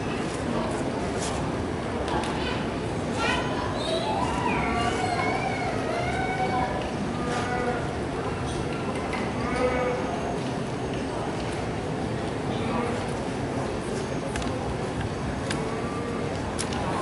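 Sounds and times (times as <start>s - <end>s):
crowd and room noise: 0.0s - 17.0s.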